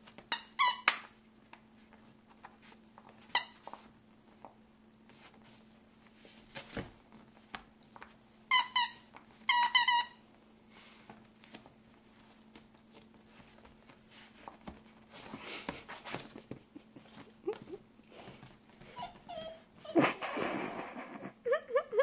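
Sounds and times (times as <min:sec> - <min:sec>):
squeaky toy squeaking: 0:00.3 - 0:01.0, 0:08.5 - 0:10.2.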